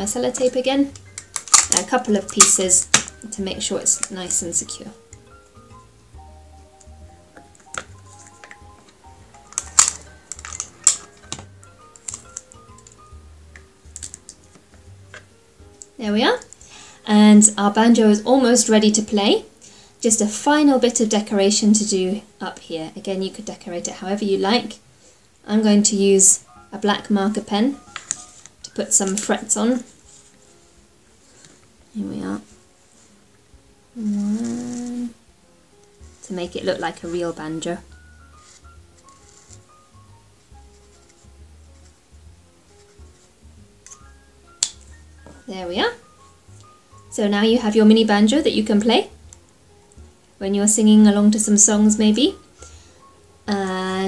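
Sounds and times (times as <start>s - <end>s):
sticky tape crackling: 0.0s - 4.8s, 6.8s - 16.6s, 34.0s - 35.2s
soft background music: 0.0s - 54.0s.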